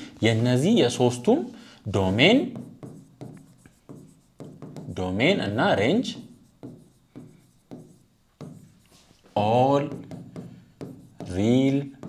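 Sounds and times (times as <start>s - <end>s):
pen tapping and scratching on screen: 2.3s - 5.0s, 5.9s - 12.0s.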